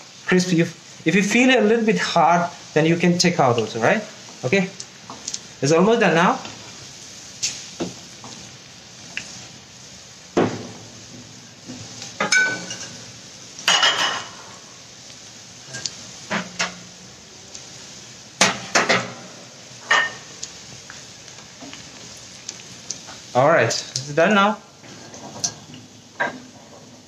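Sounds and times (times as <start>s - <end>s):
deep-frying sizzle in oil: 0.0s - 27.0s.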